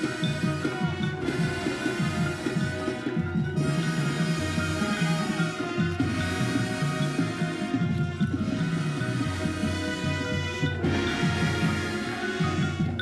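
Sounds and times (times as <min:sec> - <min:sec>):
marching band playing: 0:00.0 - 0:13.0.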